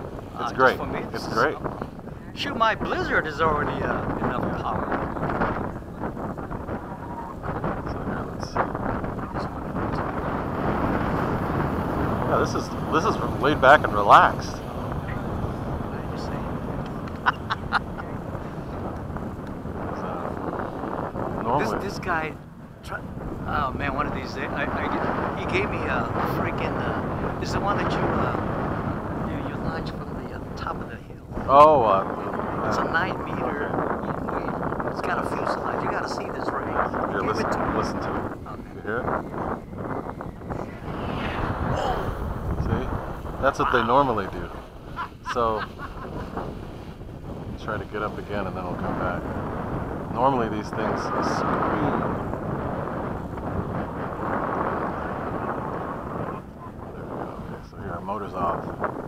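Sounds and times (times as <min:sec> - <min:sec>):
wind noise on microphone: 0:00.0 - 0:59.0
faint voices: 0:00.3 - 0:11.6, 0:12.2 - 0:20.6, 0:21.4 - 0:39.6, 0:40.3 - 0:46.2.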